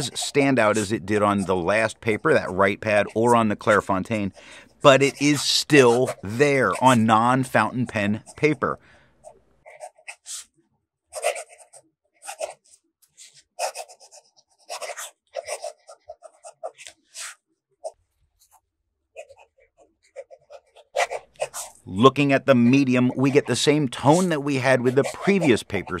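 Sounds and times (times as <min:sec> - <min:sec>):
pen nib scratching on paper: 0:00.0 - 0:04.3, 0:04.9 - 0:07.4, 0:11.1 - 0:17.4, 0:19.2 - 0:21.8, 0:22.6 - 0:26.0.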